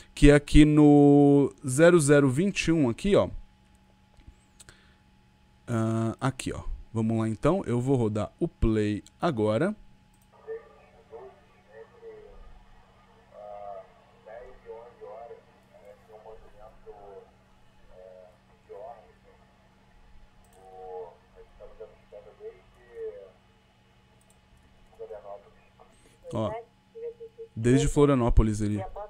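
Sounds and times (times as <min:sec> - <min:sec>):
steady low hum: 0:00.0 - 0:29.0
radio voices talking: 0:10.3 - 0:23.5, 0:24.9 - 0:28.0.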